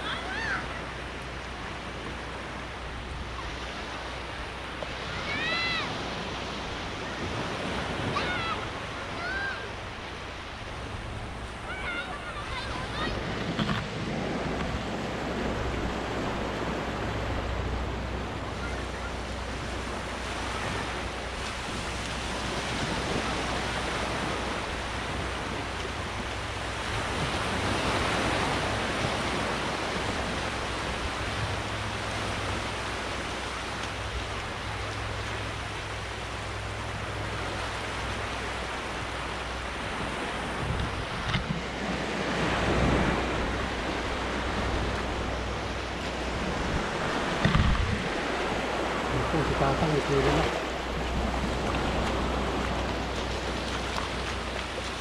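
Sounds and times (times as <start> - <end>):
small waves washing on shore: 0.0 - 55.0
wind rumbling on microphone: 1.5 - 55.0.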